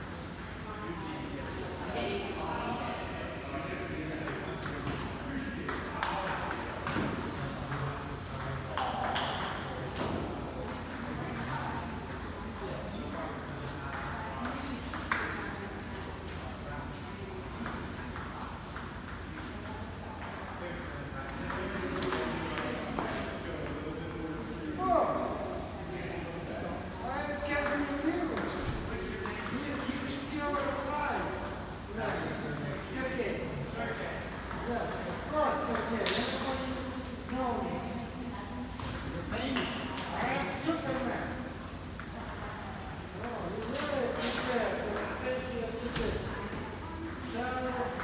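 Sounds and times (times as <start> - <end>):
table tennis ball on paddles: 4.2 - 12.3, 13.9 - 15.4, 42.0 - 42.6, 43.5 - 45.4
ball bouncing on table: 8.4 - 11.5.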